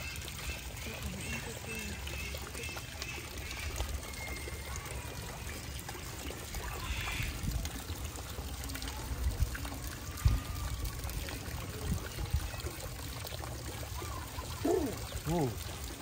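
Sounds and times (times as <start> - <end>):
water pouring: 0.0 - 16.0.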